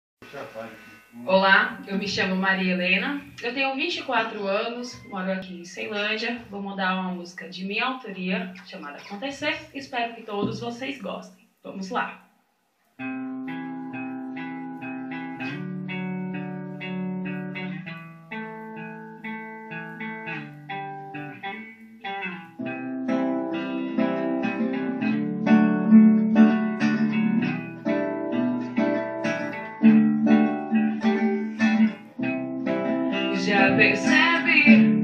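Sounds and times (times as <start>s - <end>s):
guitar picking chords: 13.0s - 35.0s.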